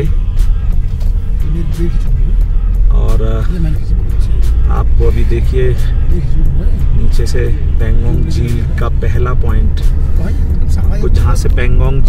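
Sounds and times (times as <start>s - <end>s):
background music: 0.0s - 12.0s
car driving rumble: 0.0s - 12.0s.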